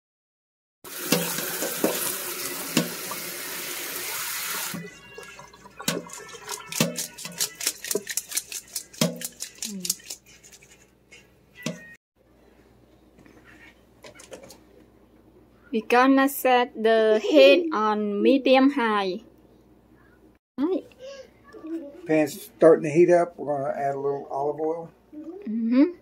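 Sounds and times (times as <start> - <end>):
water running from tap: 0.9 - 10.2.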